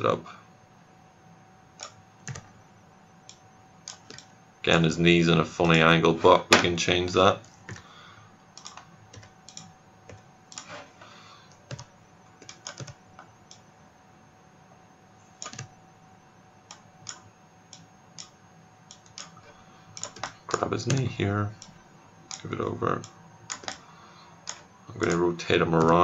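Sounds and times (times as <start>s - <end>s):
faint steady hum: 0.0s - 26.0s
computer keyboard and mouse clicks: 1.8s - 2.5s, 3.3s - 4.3s, 8.6s - 10.7s, 11.6s - 13.6s, 15.4s - 15.7s, 16.7s - 19.4s, 20.0s - 23.8s, 24.4s - 25.2s.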